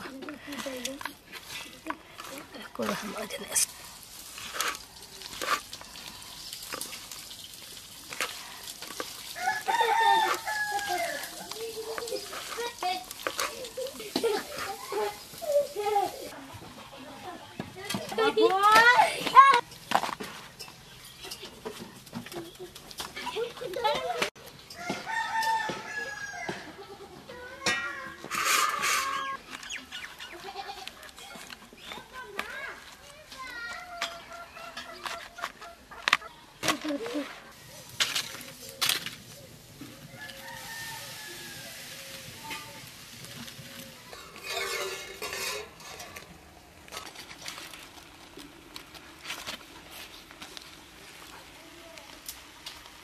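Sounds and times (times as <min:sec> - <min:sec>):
rooster crowing: 0:09.4 - 0:11.5, 0:24.7 - 0:26.8, 0:40.1 - 0:42.0
chickens clucking: 0:20.8 - 0:32.0, 0:33.9 - 0:46.6.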